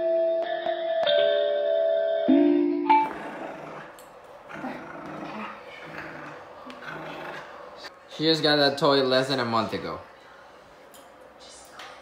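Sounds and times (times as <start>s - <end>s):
dog growling in play: 3.0s - 7.9s.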